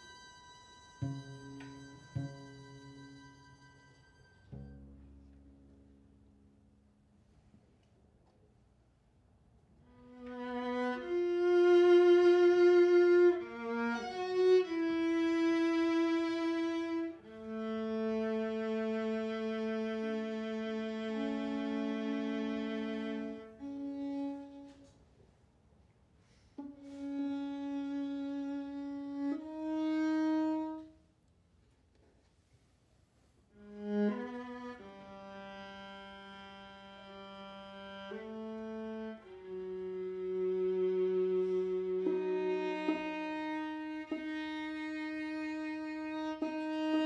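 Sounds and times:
string quartet sustained bowed notes: 0:00.0 - 0:06.1, 0:09.9 - 0:25.0, 0:26.5 - 0:31.0, 0:33.6 - 0:47.0.

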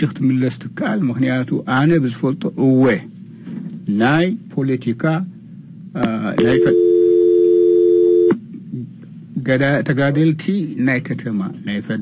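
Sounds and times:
telephone line tone: 0:06.4 - 0:08.4.

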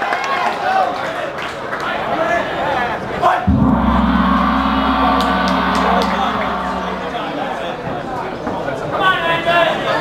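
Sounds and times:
long steady horn blast: 0:03.5 - 0:07.6.

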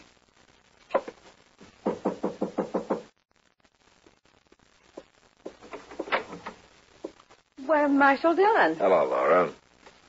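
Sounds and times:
knuckles knocking on wooden door: 0:01.8 - 0:03.1.

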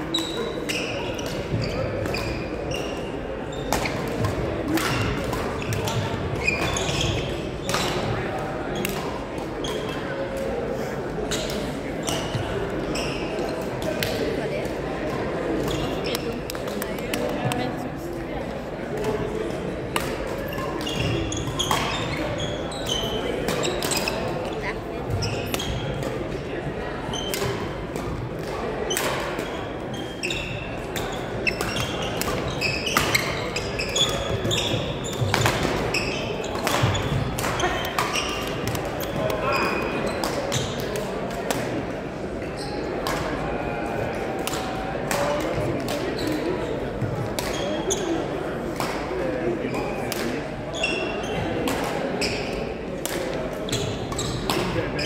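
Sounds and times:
sneakers squeaking on wooden floor: 0:00.1 - 0:04.1, 0:04.9 - 0:08.0, 0:11.3 - 0:13.6, 0:15.6 - 0:16.5, 0:20.5 - 0:25.8, 0:29.5 - 0:40.8, 0:42.4 - 0:42.9, 0:45.3 - 0:48.2, 0:50.8 - 0:51.5, 0:52.2 - 0:52.6, 0:53.7 - 0:55.0.

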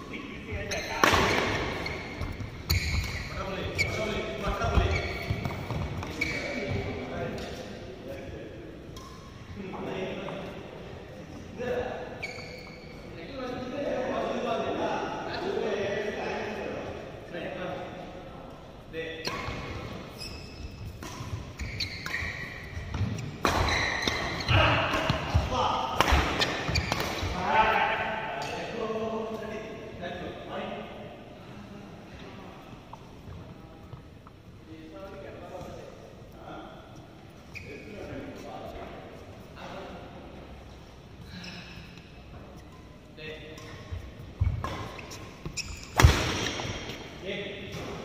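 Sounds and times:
players' voices: 0:00.0 - 0:20.2, 0:21.0 - 0:48.0
rackets hitting shuttlecock: 0:00.7 - 0:06.4, 0:20.9 - 0:27.4, 0:43.4 - 0:47.0.

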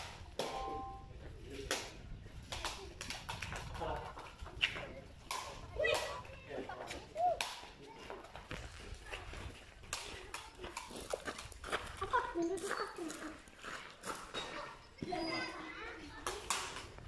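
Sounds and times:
balls landing on concrete: 0:00.0 - 0:00.9, 0:01.5 - 0:08.8, 0:16.2 - 0:17.0
wooden bat hitting balls: 0:00.0 - 0:01.0, 0:05.2 - 0:06.2
children calling: 0:14.3 - 0:17.0.

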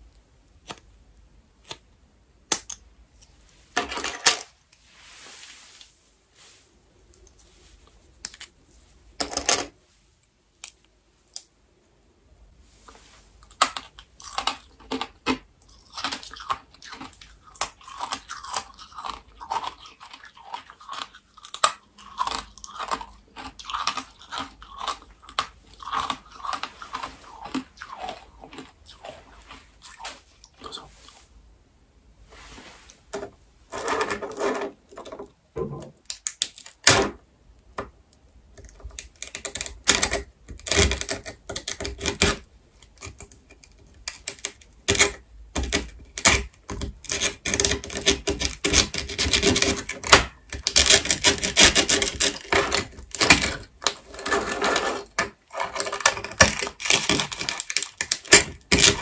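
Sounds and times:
candy cracking with snaps: 0:00.1 - 0:03.4, 0:13.4 - 0:29.0, 0:36.0 - 0:36.9, 0:55.8 - 0:59.0
crunching and chewing candy: 0:13.4 - 0:30.9, 0:55.4 - 0:59.0
pin scratching candy: 0:44.1 - 0:59.0.

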